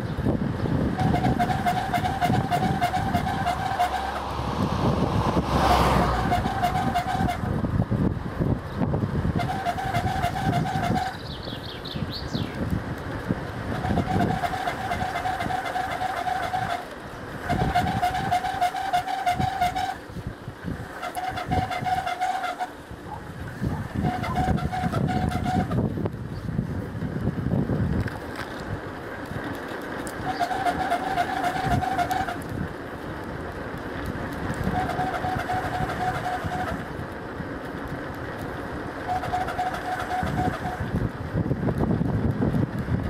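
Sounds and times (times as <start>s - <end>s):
bicycle tyre noise: 0.0s - 43.0s
wind rumbling on microphone: 0.0s - 43.0s
steady whine: 1.0s - 7.5s
bird chirps: 11.1s - 12.6s.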